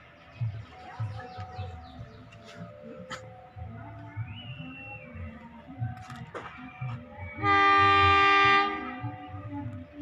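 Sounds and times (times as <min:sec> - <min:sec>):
locomotive air horn blast: 0:07.4 - 0:09.0.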